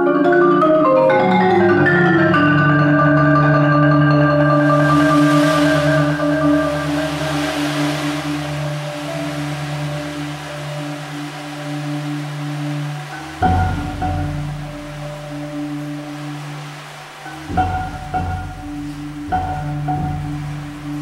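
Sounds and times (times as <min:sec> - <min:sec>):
marimba chords: 0:00.0 - 0:21.0
percussion ensemble: 0:00.2 - 0:21.0.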